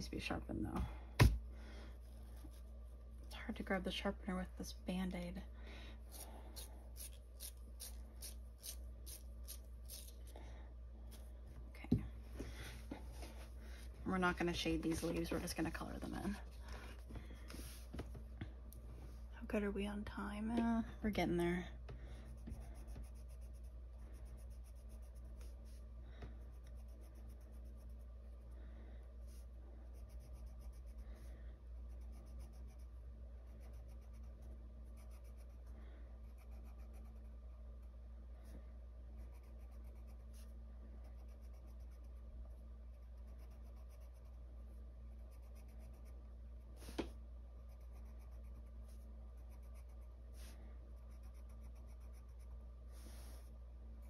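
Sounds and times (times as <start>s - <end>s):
steady low hum: 0.0s - 54.0s
pencil scratching on paper: 22.3s - 25.8s, 26.4s - 28.1s, 29.3s - 37.6s, 39.2s - 44.5s, 45.1s - 53.5s.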